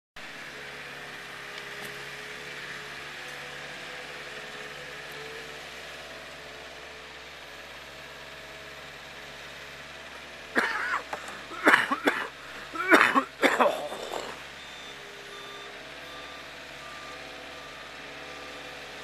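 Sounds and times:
forklift engine running: 0:00.2 - 0:19.0.

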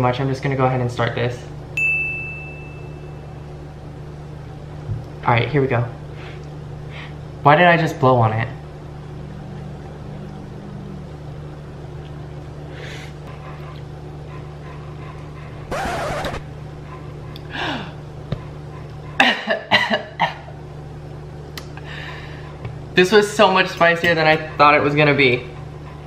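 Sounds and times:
steady low hum: 0:00.0 - 0:26.0
person coughing and sputtering: 0:19.2 - 0:20.5.

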